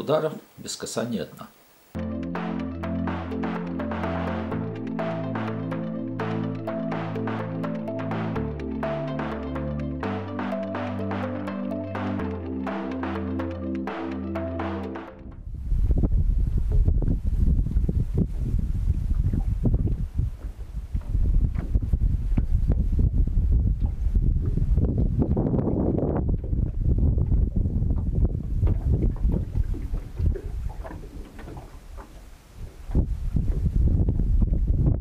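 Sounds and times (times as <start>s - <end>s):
wind buffeting microphone: 15.2s - 35.0s.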